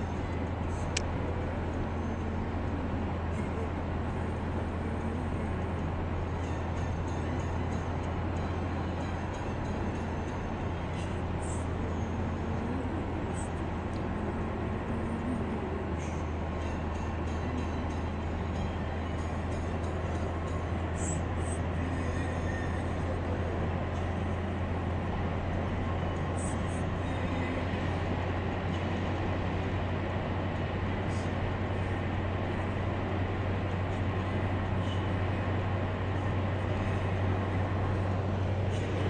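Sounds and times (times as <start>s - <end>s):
car road noise: 0.0s - 39.0s.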